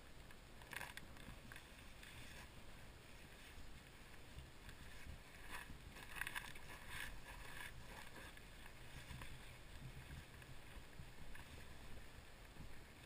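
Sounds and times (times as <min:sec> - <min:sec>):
crackles: 0:00.0 - 0:13.0.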